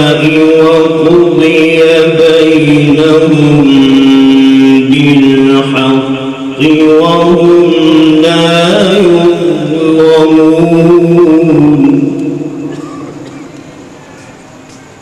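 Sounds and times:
man chanting recitation: 0.0s - 12.6s.

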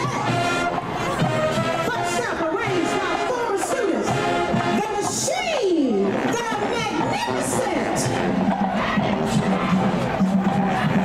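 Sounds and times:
brass sustained chords: 0.0s - 5.1s
drum line: 0.0s - 11.0s
marching band playing: 0.0s - 11.0s.

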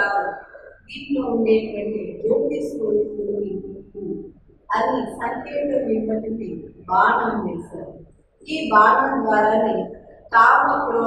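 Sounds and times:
woman speaking: 0.0s - 7.9s, 8.5s - 11.0s.

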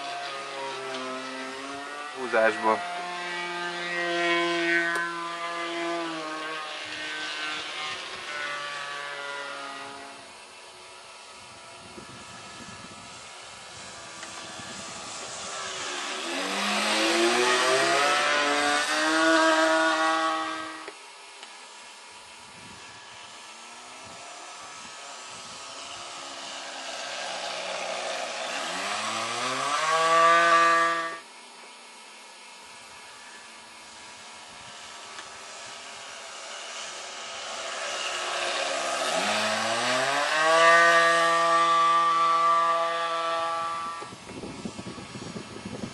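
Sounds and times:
model airplane engine buzzing: 0.0s - 45.9s.

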